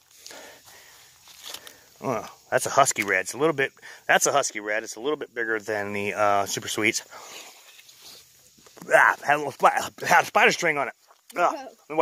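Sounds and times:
footsteps on grass: 0:00.0 - 0:01.9.

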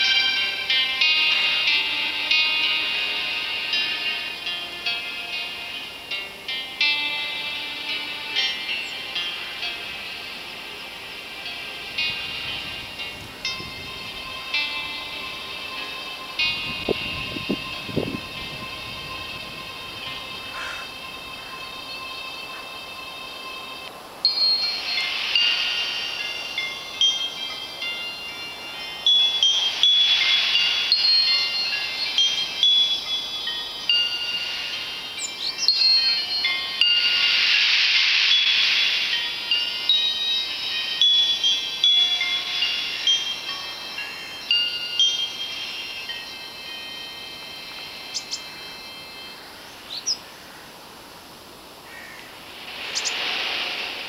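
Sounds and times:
metal chimes ringing: 0:00.0 - 0:50.4
faint bird chirps: 0:48.1 - 0:48.7, 0:49.3 - 0:50.7, 0:51.9 - 0:53.4.

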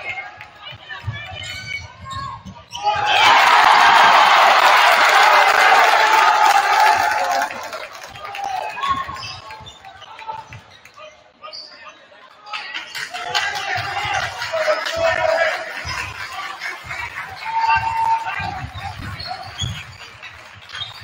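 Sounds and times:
crowd voices: 0:00.0 - 0:21.0
crowd cheering: 0:02.8 - 0:11.0, 0:12.5 - 0:21.0.

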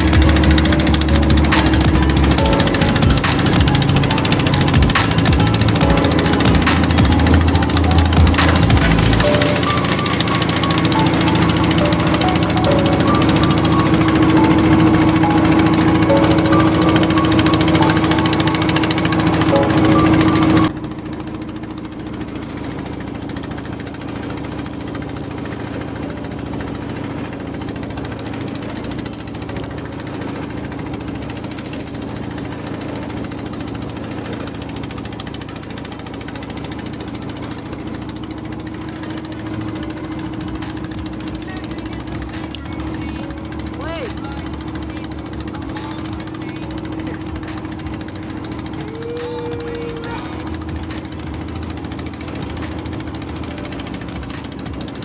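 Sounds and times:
music: 0:00.0 - 0:20.7, 0:38.3 - 0:55.0
boat engine droning: 0:00.0 - 0:55.0.

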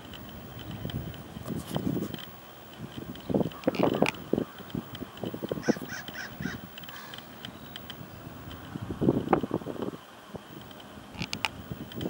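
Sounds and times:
bird calling: 0:03.1 - 0:09.7.

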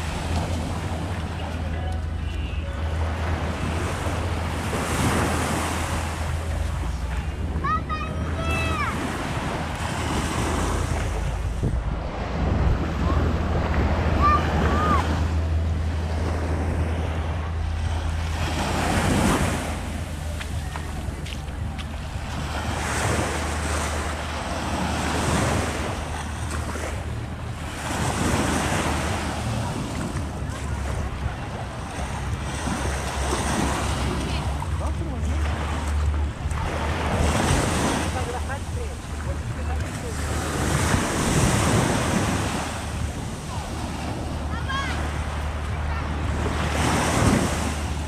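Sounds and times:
distant voices calling out: 0:00.0 - 0:22.6
small waves washing on shore: 0:00.0 - 0:48.0
wind rumble on microphone: 0:00.0 - 0:48.0.

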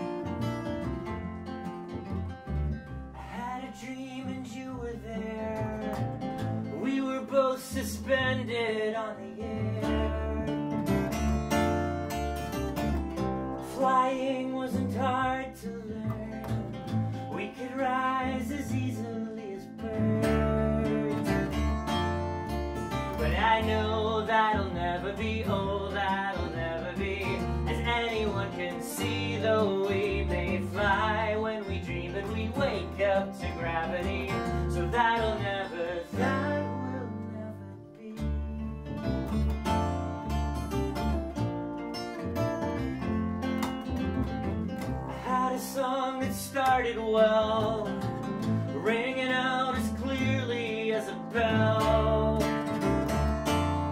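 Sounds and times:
acoustic guitar strumming: 0:00.0 - 0:53.9
upright bass: 0:00.0 - 0:53.9
man singing: 0:03.2 - 0:11.0, 0:13.6 - 0:21.9, 0:23.1 - 0:39.0, 0:45.1 - 0:53.1.

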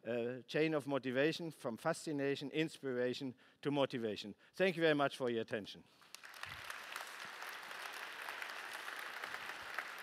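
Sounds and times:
audience applauding: 0:06.1 - 0:10.0.

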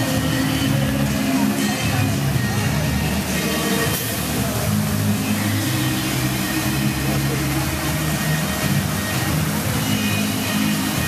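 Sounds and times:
fountain jets hissing and splashing: 0:00.0 - 0:11.0
music over loudspeakers: 0:00.0 - 0:11.0.

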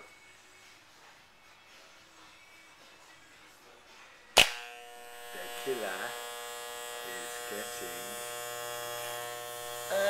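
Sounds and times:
electric hair clippers buzzing: 0:04.4 - 0:10.0.

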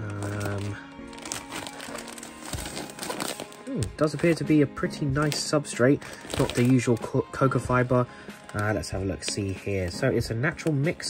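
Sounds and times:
background music: 0:00.0 - 0:11.0
plastic bag crinkling: 0:00.0 - 0:11.0.

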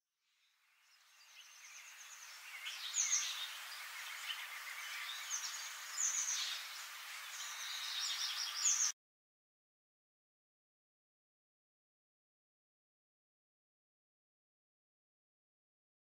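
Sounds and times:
small birds chirping: 0:00.2 - 0:09.0
steady high hiss: 0:00.8 - 0:08.9.

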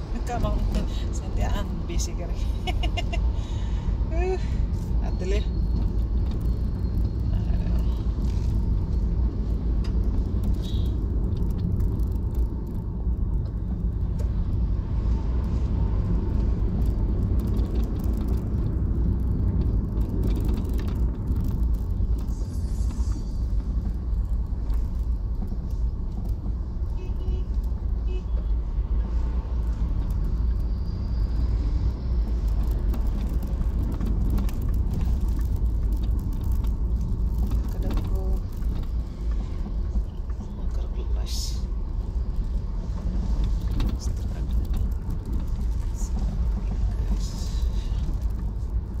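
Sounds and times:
car driving on rough road: 0:00.0 - 0:49.0.

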